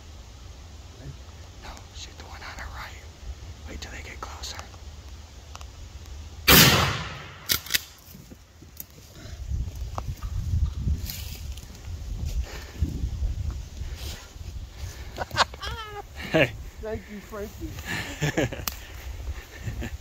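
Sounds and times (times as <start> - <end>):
shotgun shot: 6.5 - 8.0.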